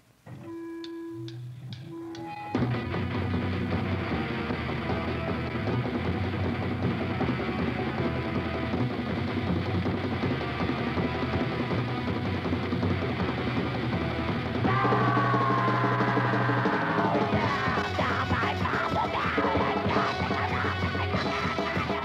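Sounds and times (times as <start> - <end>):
muffled punk rock band: 1.3 - 22.0.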